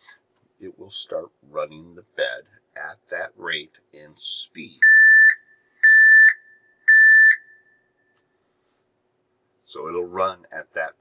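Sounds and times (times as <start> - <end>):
high alarm beeps: 4.8 - 7.7.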